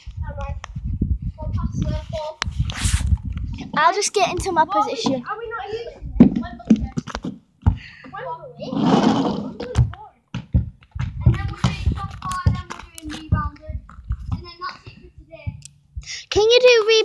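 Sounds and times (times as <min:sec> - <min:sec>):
children talking: 0:01.3 - 0:10.3, 0:11.0 - 0:17.0
scattered knocks: 0:09.7 - 0:14.6.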